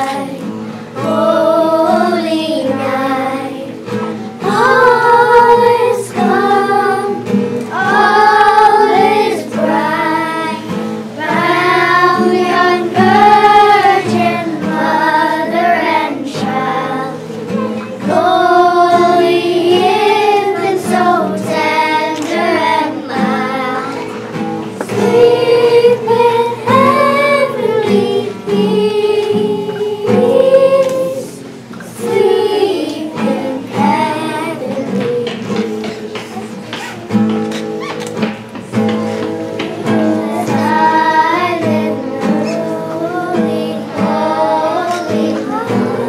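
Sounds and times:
acoustic guitar: 0:00.0 - 0:46.0
girls choir singing: 0:00.0 - 0:46.0.

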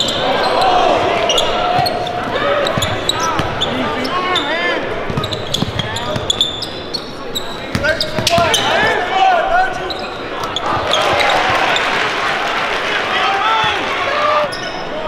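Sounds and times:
sneakers squeaking: 0:00.0 - 0:12.0, 0:14.4 - 0:15.0
crowd voices echoing: 0:00.0 - 0:15.0.

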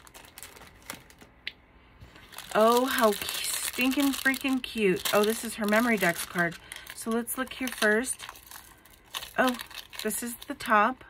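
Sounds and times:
plastic bag rustling: 0:00.0 - 0:01.4, 0:02.0 - 0:10.8.

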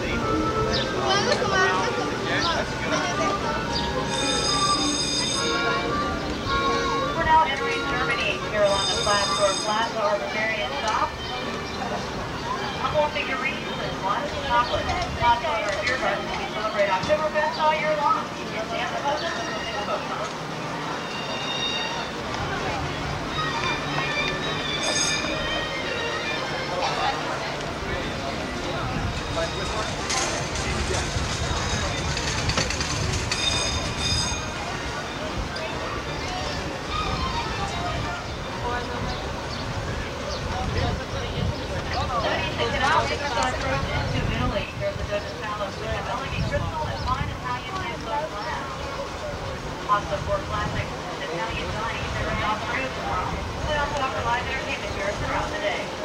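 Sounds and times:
people talking: 0:00.0 - 0:56.0
bus engine rumble: 0:21.9 - 0:56.0.

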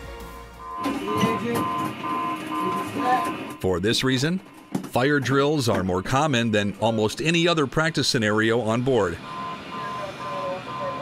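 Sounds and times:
steady high electronic tone: 0:00.0 - 0:11.0.

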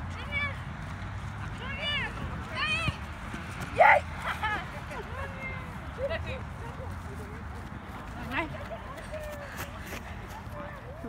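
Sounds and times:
loud shout: 0:03.7 - 0:04.4.

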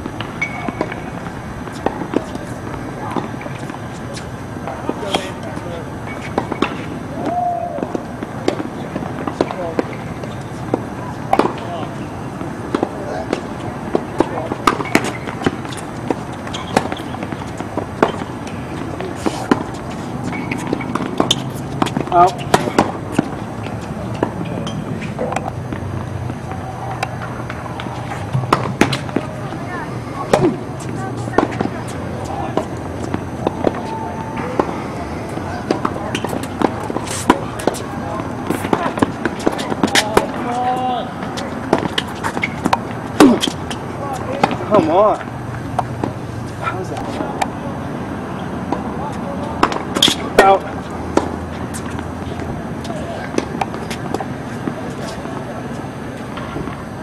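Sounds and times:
distant voices: 0:00.0 - 0:57.0
tennis balls struck and bouncing: 0:00.0 - 0:57.0.

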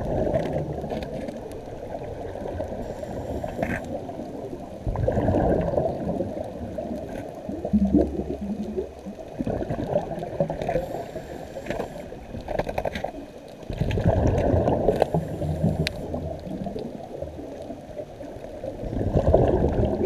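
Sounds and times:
exhaled bubbles: 0:00.0 - 0:13.0, 0:13.6 - 0:20.0
diver breathing through regulator: 0:02.8 - 0:03.9, 0:10.7 - 0:12.2, 0:14.9 - 0:16.2.

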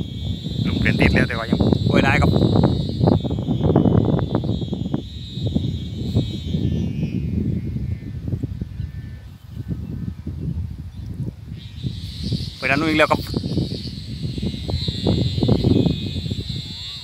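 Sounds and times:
steady high-pitched hum: 0:00.0 - 0:17.0
wind gusting against microphone: 0:00.0 - 0:17.0.

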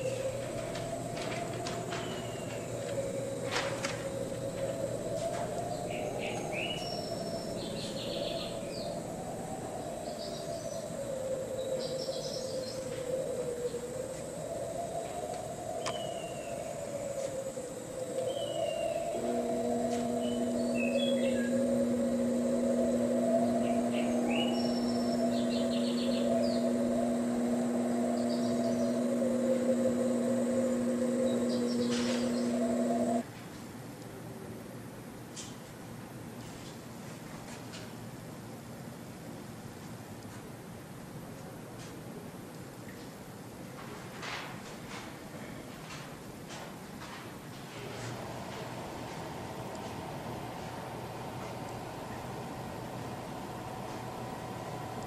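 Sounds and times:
steady low hum: 0:00.0 - 0:33.2, 0:47.8 - 0:55.0
wavering drone: 0:00.0 - 0:33.2, 0:47.8 - 0:55.0
bird chirps: 0:18.2 - 0:33.2.

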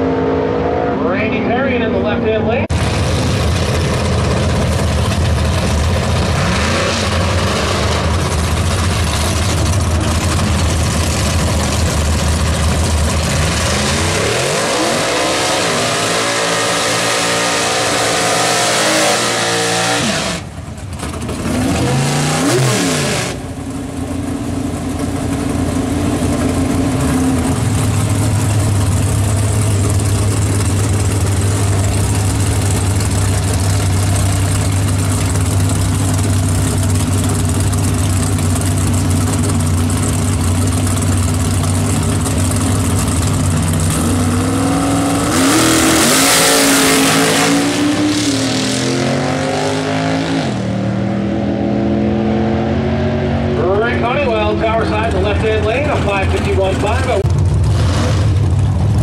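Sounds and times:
cars launching at full throttle: 0:00.0 - 0:23.8, 0:26.5 - 0:59.0
car engines idling: 0:00.0 - 0:51.2, 0:53.0 - 0:59.0
drag car engines revving: 0:00.0 - 0:59.0.

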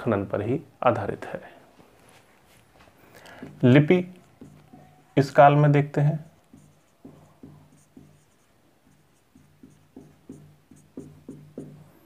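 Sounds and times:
marker pen writing on whiteboard: 0:03.3 - 0:12.0.

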